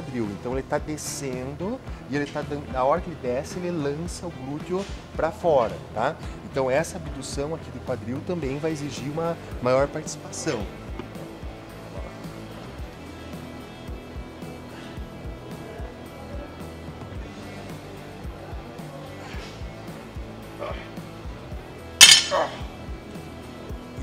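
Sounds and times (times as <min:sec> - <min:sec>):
barbell metallic clank: 0:22.0 - 0:22.6.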